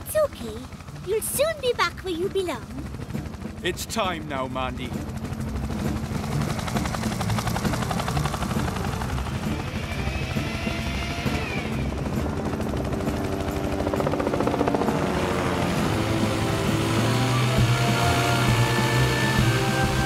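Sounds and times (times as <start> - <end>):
background music: 0.0 - 20.0
helicopter rotor chop: 0.0 - 20.0.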